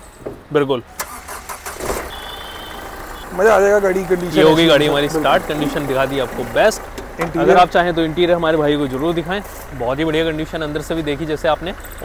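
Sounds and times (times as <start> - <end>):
car engine starting and idling: 0.0 - 12.0.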